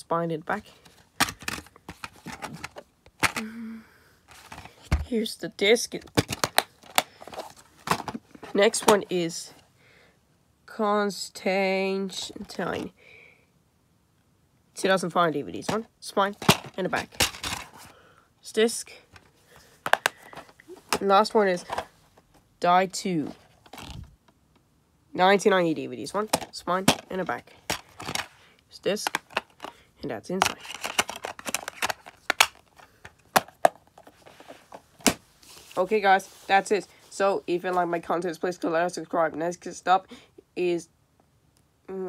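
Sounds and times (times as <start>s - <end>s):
plastic case clicking and clattering: 1.2s - 3.4s, 6.1s - 8.2s, 16.4s - 17.8s, 19.2s - 21.9s, 29.0s - 29.7s, 30.4s - 34.2s
plastic case snapping open: 16.4s - 17.7s, 30.4s - 32.6s.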